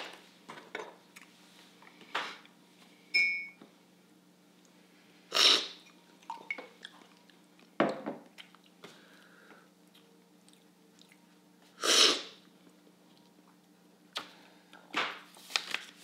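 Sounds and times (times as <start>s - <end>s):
loud coffee slurps: 5.3s - 5.8s.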